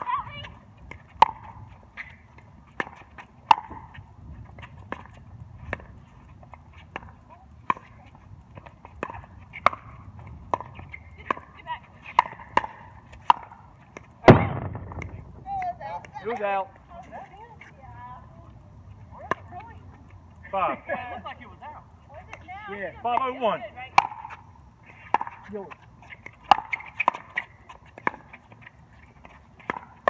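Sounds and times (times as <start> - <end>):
loud thump: 14.2 - 15.5.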